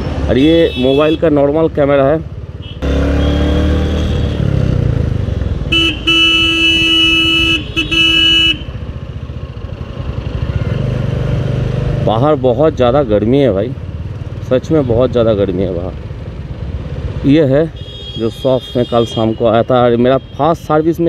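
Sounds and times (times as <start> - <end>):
motorcycle engine running: 1.9 - 17.3
vehicle horn blast: 2.6 - 4.5, 5.7 - 8.8, 17.8 - 20.5.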